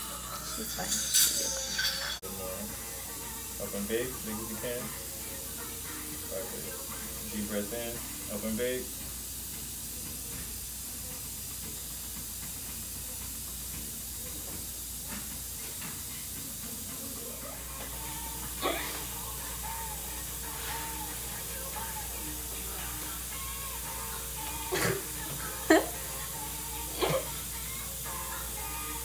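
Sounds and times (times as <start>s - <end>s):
dental suction hiss: 0.2s - 29.0s.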